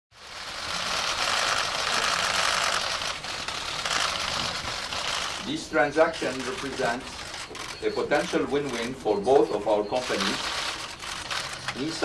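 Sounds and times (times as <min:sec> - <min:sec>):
camera shutters clicking rapidly: 0:00.6 - 0:09.0, 0:10.0 - 0:12.0.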